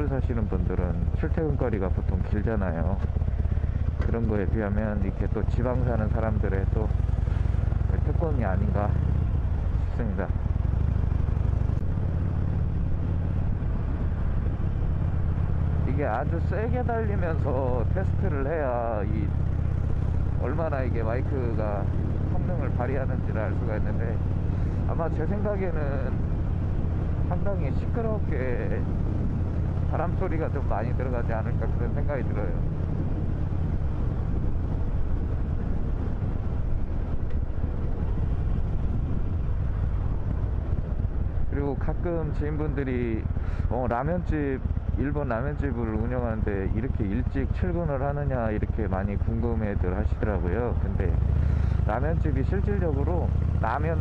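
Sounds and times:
motorcycle engine running: 0.0s - 54.0s
wind buffeting microphone: 6.6s - 23.2s, 25.7s - 45.0s.

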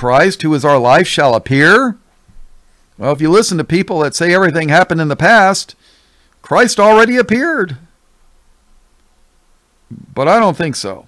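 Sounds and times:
man talking: 0.0s - 2.0s, 3.0s - 5.8s, 6.4s - 7.9s, 9.9s - 11.0s
low hiss: 0.0s - 11.0s.

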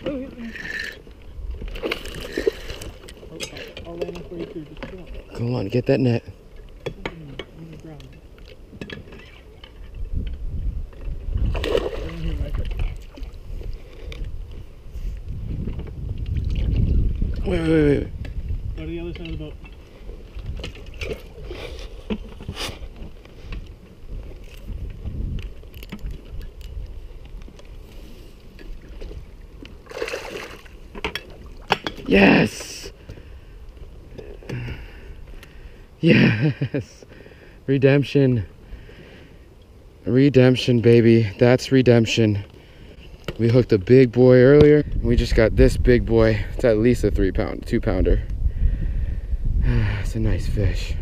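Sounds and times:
wind rumbling on microphone: 0.0s - 3.3s, 8.2s - 36.8s, 42.9s - 51.0s
water sloshing around a boat: 0.0s - 10.2s, 10.8s - 14.9s, 18.8s - 32.3s.

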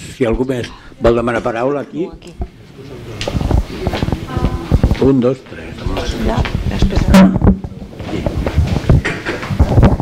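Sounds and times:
faint voices: 2.3s - 8.6s
handheld microphone handling thumps: 5.9s - 10.0s.

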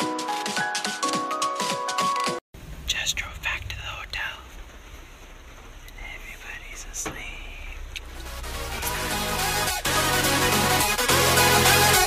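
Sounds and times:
person whispering: 2.9s - 4.6s, 5.9s - 7.9s.

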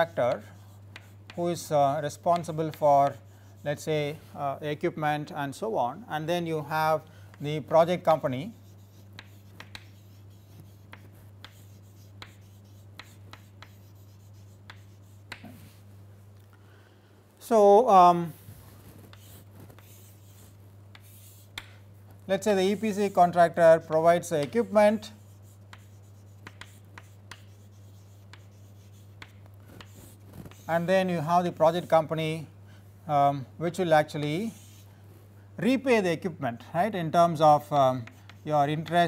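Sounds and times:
chalk tapping and scratching: 0.0s - 3.9s, 7.3s - 15.8s, 18.4s - 21.8s, 22.4s - 32.0s, 34.1s - 34.9s, 37.9s - 39.0s
steady low hum: 0.0s - 39.0s.

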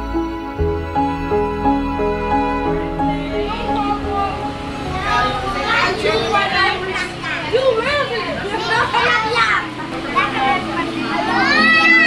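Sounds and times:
soft background music: 0.0s - 7.0s
children's voices and party chatter: 2.5s - 12.0s.

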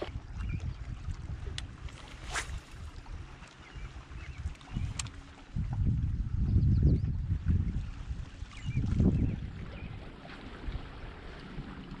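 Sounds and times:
water lapping at boat hull: 0.0s - 12.0s
wind rumbling on microphone: 0.0s - 12.0s.

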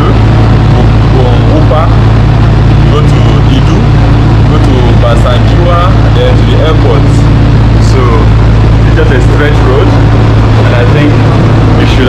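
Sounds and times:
man talking: 0.0s - 2.0s, 2.8s - 12.0s
train carriage hum and rumble: 0.0s - 12.0s.

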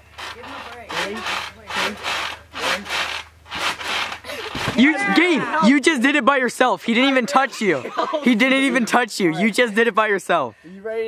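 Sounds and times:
trampoline springs creaking: 0.0s - 9.8s.

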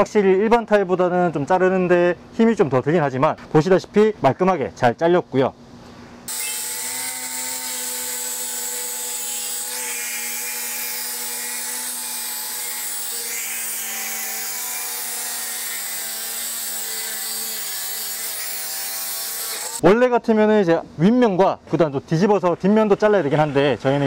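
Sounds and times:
angle grinder cutting panel: 6.3s - 19.8s.

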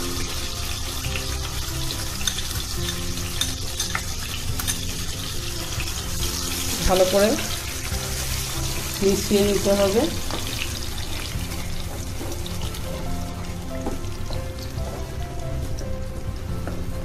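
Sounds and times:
background music: 0.0s - 17.0s
food frying in oil: 0.0s - 17.0s.

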